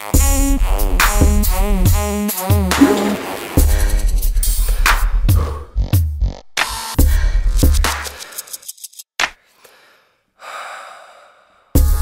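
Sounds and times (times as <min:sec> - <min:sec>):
deep bass note: 0:02.8 - 0:03.9.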